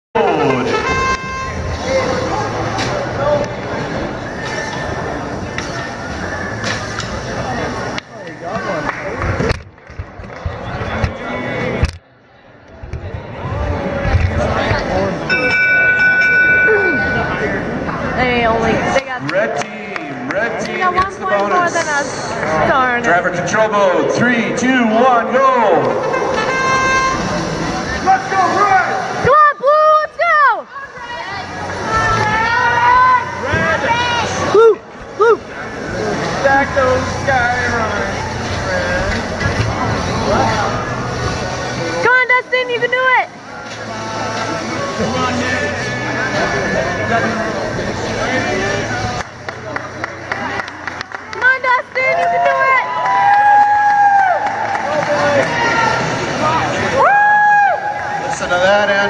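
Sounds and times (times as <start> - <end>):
crowd noise: 0.1 - 59.0
short electronic horn tone: 0.2 - 2.2, 26.0 - 27.6
many voices talking: 0.2 - 53.0, 54.6 - 59.0
music playing: 35.5 - 51.8.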